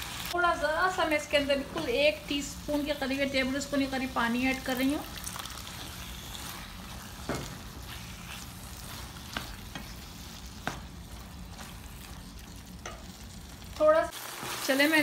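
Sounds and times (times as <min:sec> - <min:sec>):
food sizzling in a frying pan: 0:00.0 - 0:15.0
spoon stirring food: 0:05.1 - 0:13.7.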